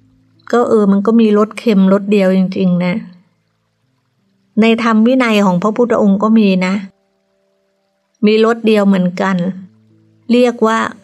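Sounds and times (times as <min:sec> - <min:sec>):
woman speaking: 0:00.5 - 0:03.2, 0:04.6 - 0:07.0, 0:08.2 - 0:11.0.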